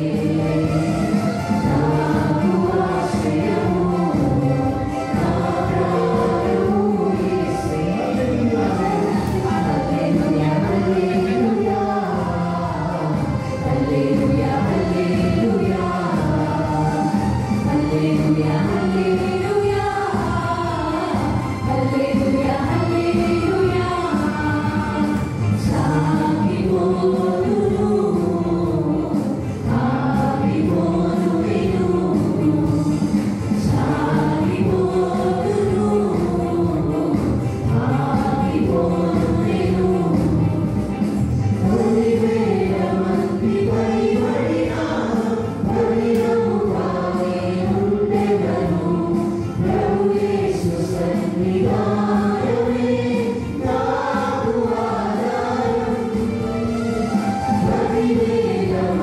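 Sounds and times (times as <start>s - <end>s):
electronic keyboard: 0.0s - 59.0s
mixed choir singing: 0.0s - 59.0s.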